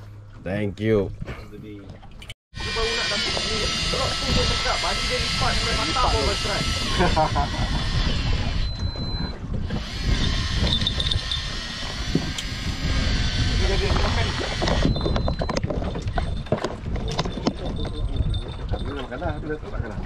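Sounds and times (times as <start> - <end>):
wind buffeting microphone: 2.7 - 20.0.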